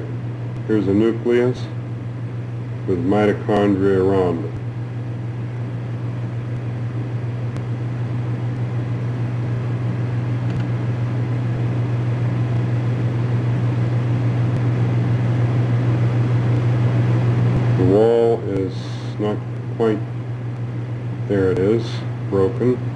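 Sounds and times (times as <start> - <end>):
steady low hum: 0.0 - 22.9.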